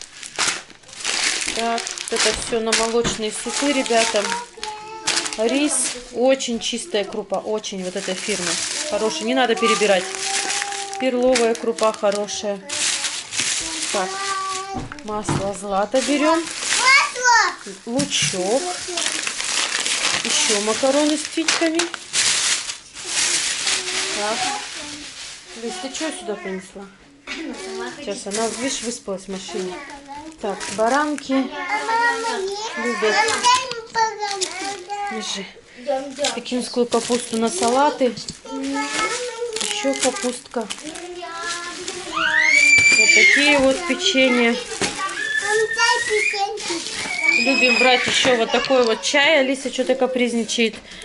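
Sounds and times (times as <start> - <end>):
plastic bags rustling: 0.0 - 51.0
toddler whining and crying: 3.6 - 5.4, 9.0 - 11.1, 42.0 - 49.0.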